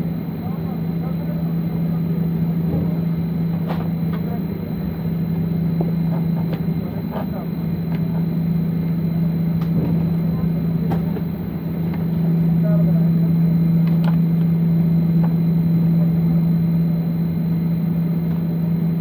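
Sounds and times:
jet airliner cabin hum: 0.0s - 19.0s.

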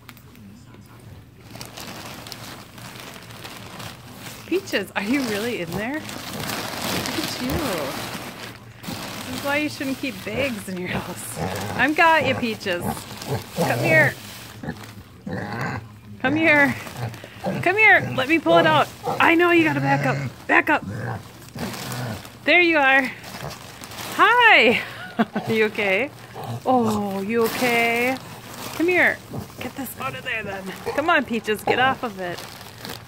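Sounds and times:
plastic bag crinkling: 1.4s - 33.0s
pig grunting: 10.2s - 22.5s, 25.2s - 32.5s.

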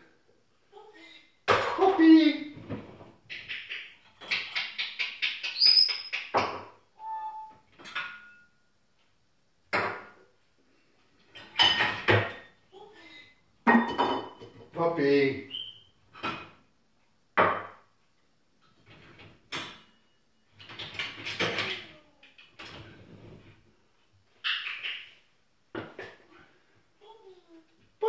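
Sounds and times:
parrot chattering and whistling: 3.3s - 6.3s, 7.0s - 7.6s
crockery and cutlery clinking: 7.7s - 8.6s, 11.2s - 12.6s, 13.7s - 14.7s.

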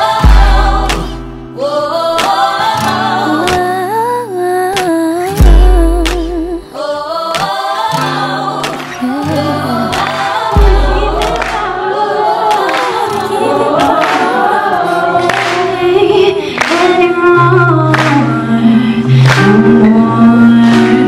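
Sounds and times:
pop beat with deep bass: 0.0s - 1.6s, 4.7s - 6.7s, 8.6s - 11.9s
female vocal harmonies: 0.0s - 21.0s.

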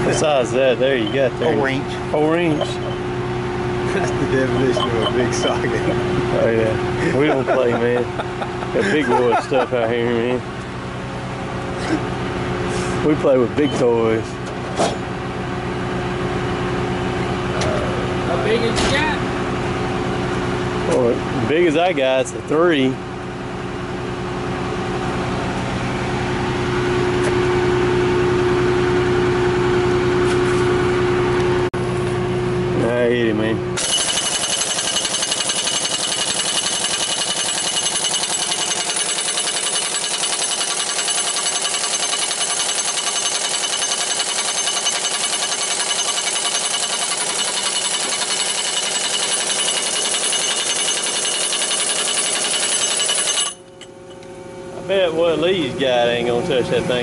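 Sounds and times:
engine running: 0.0s - 57.0s
impact wrench hammering: 33.8s - 53.9s.

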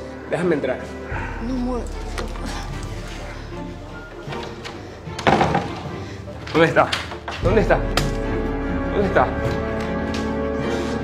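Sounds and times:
background music: 0.0s - 11.0s
door banging open: 4.3s - 5.9s.

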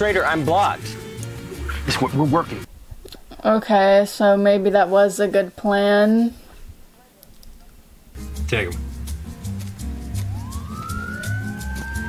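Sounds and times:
music with pulsing bass beat: 8.2s - 12.0s
police car siren: 10.2s - 12.0s.

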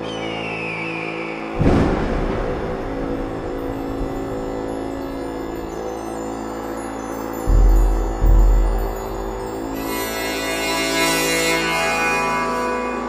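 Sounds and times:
chimes: 0.0s - 13.0s
eerie held tones: 0.0s - 13.0s
loud low ringing hit: 1.6s - 5.9s.

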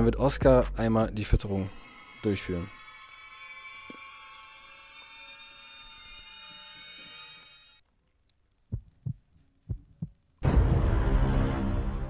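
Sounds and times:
heartbeat thumps: 8.7s - 10.2s.

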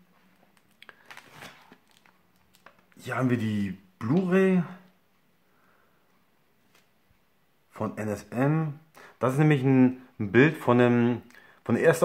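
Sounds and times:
soft rustle of hands: 6.1s - 7.2s.

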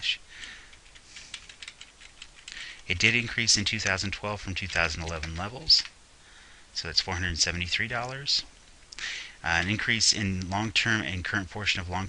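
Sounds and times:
keyboard keystrokes: 0.8s - 4.0s.

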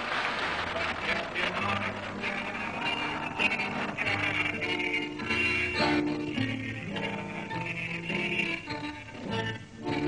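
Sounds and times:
background noise: 0.0s - 10.0s.

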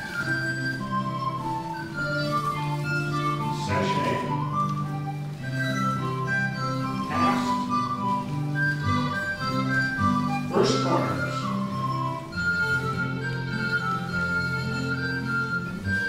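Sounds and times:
live band playing dance tune: 6.0s - 15.7s.

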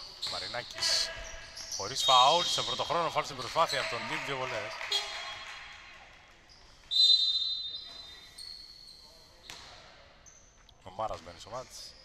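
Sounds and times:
referee's whistle blast: 1.8s - 4.2s, 6.9s - 8.6s.

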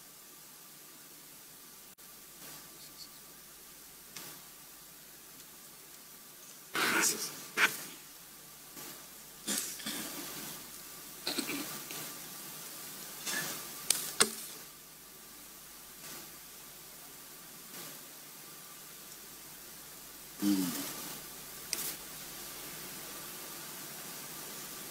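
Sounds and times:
steady line hiss: 0.0s - 24.9s.

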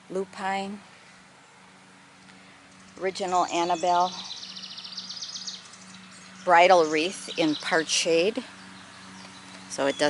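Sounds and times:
small bird trilling: 2.8s - 7.8s.

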